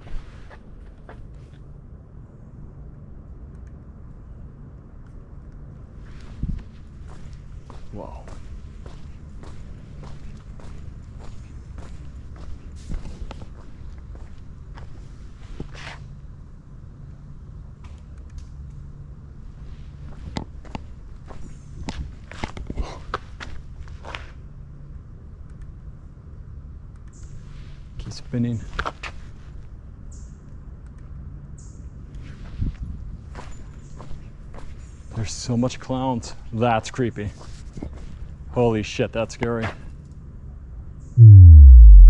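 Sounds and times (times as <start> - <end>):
footsteps on paved path: 6.1 - 15.0
steady low hum: 41.2 - 42.0.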